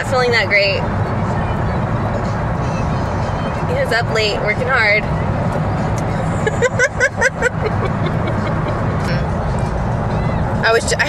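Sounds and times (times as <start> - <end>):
car road and engine noise: 0.0 - 11.0
high-pitched laugh: 6.4 - 9.1.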